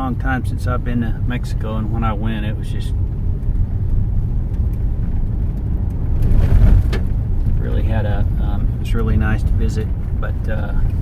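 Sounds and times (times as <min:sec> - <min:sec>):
tyres rumbling on gravel road: 0:00.0 - 0:11.0.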